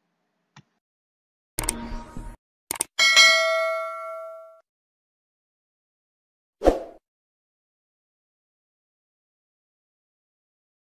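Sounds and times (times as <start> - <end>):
quick clicks: 2.7 - 2.9
notification bell ding: 3.0 - 4.6.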